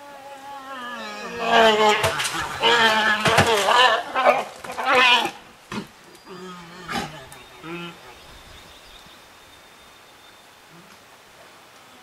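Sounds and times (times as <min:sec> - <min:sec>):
bears bawling: 0:00.2 - 0:08.6.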